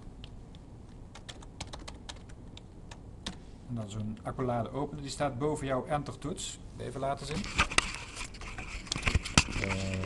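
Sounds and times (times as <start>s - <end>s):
typing on computer keyboard: 1.1s - 3.4s.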